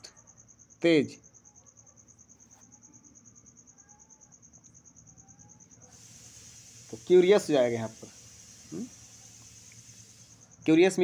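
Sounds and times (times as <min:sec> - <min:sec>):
high-pitched insect trill: 0:00.0 - 0:11.0.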